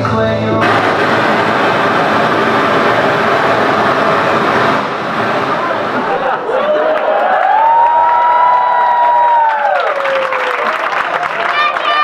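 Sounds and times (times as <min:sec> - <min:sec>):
audience applause and cheering: 0:00.6 - 0:12.0.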